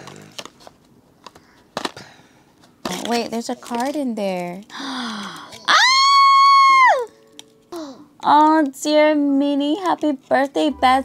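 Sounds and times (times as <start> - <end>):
person squealing with excitement: 5.7 - 7.1.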